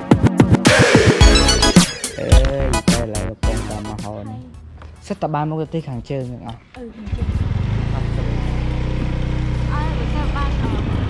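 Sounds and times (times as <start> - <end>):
motorcycle engine running: 6.7 - 11.0.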